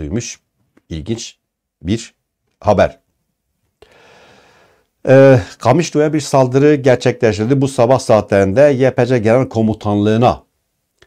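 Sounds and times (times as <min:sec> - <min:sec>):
faint breath drawn in: 0:03.8 - 0:04.9.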